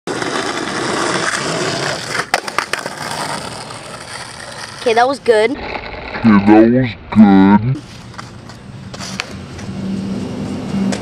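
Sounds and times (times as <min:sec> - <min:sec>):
skateboard clacks: 0:00.1 - 0:05.3
skateboard wheels rolling on asphalt: 0:00.1 - 0:06.5, 0:07.8 - 0:11.0.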